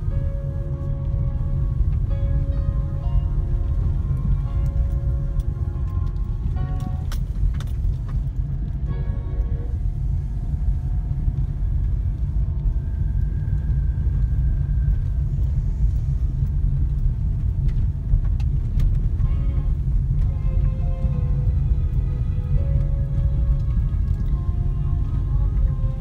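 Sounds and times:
car road and engine rumble: 0:00.0 - 0:26.0.

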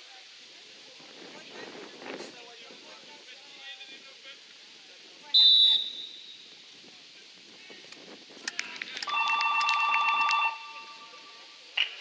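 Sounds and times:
referee's whistle trilling: 0:05.4 - 0:06.4.

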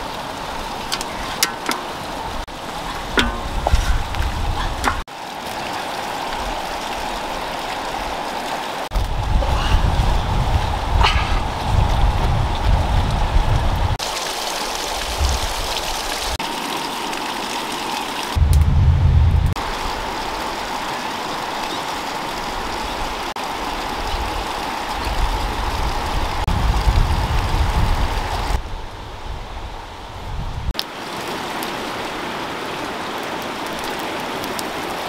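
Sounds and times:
running water rushing: 0:00.0 - 0:18.7, 0:19.5 - 0:35.0
low rumble: 0:18.4 - 0:19.6.

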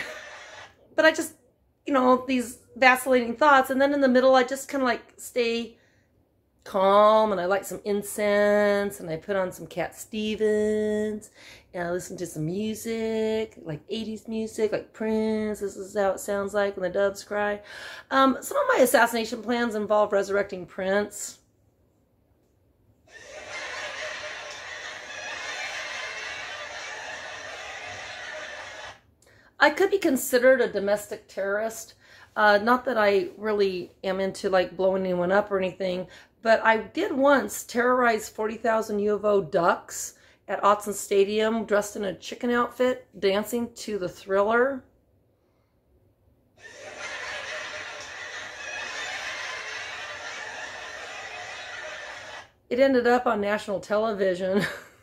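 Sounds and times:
laugh track laughter: 0:00.0 - 0:00.7, 0:23.1 - 0:29.0, 0:46.6 - 0:52.5.

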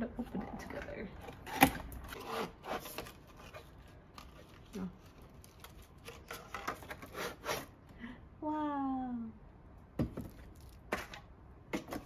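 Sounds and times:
cardboard scraping and crinkling: 0:01.2 - 0:07.7.

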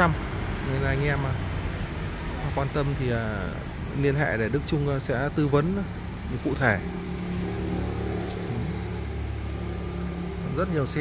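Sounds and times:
low mechanical hum: 0:04.4 - 0:11.0.

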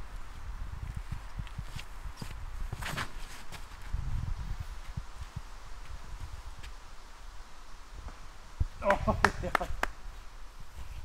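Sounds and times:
rustle: 0:00.0 - 0:11.0.

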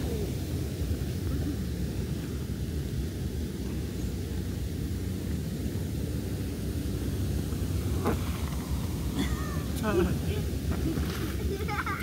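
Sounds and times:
hot tub jets bubbling water: 0:00.0 - 0:12.0.

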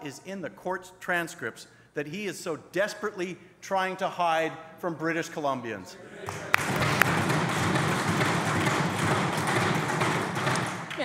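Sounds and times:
people applauding: 0:06.2 - 0:11.0
thumping on desks: 0:06.6 - 0:11.0.

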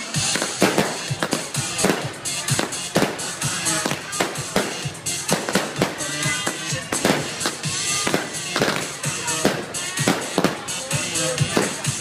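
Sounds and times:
fireworks bangs and crackles: 0:00.0 - 0:12.0.

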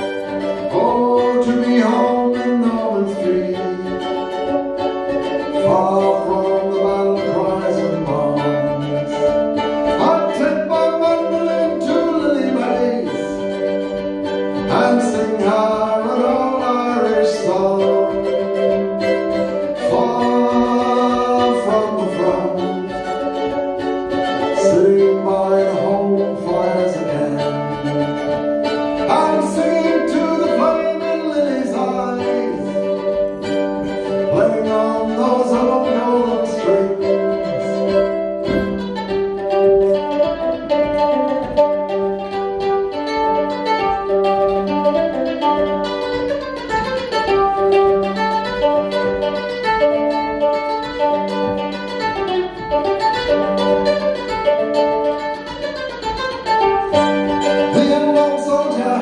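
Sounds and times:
mandolin playing: 0:00.0 - 0:59.0.

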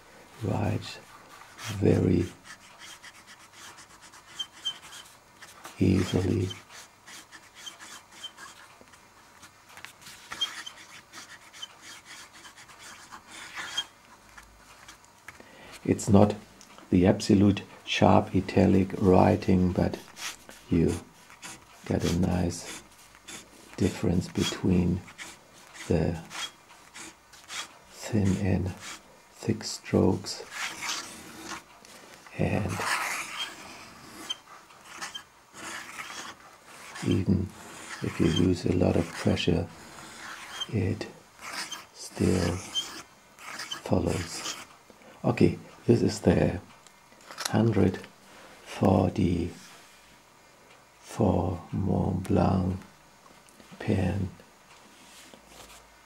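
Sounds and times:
fountain pen scratching on paper: 0:01.5 - 0:08.7, 0:09.4 - 0:15.0, 0:19.9 - 0:29.0, 0:30.4 - 0:31.6, 0:32.4 - 0:44.7.

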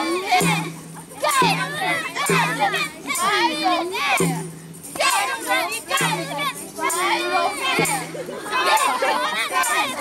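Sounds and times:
people shouting: 0:00.0 - 0:04.3, 0:05.0 - 0:10.0
children and adults singing: 0:00.0 - 0:10.0.

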